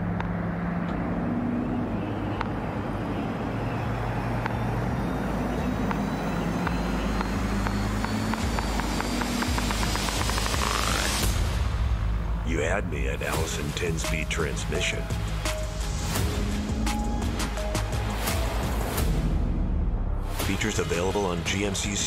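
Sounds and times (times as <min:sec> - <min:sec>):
tyre and road noise: 0:00.0 - 0:19.5
truck engine drone: 0:00.0 - 0:22.0
sharp clicks: 0:05.8 - 0:11.3.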